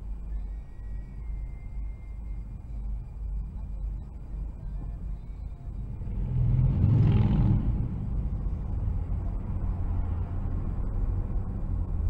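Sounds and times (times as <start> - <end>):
road traffic rumble inside car: 0.0 - 12.0.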